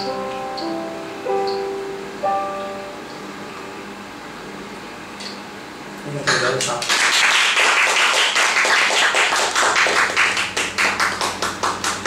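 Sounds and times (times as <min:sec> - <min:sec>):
keyboard chords ringing: 0:00.0 - 0:04.1.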